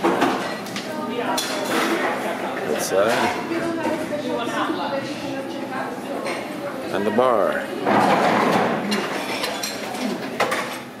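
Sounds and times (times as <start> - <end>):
bar room background noise: 0.0 - 11.0
tableware clinking: 7.9 - 10.9.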